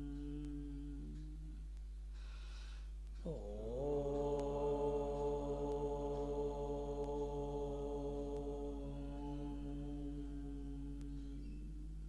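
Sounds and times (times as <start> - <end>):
man chanting in long tones: 0.0 - 1.6, 3.2 - 12.0.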